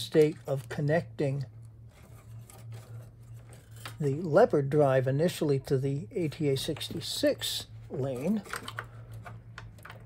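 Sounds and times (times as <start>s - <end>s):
steady low hum: 0.0s - 10.0s
hands handling a cable: 8.2s - 10.0s.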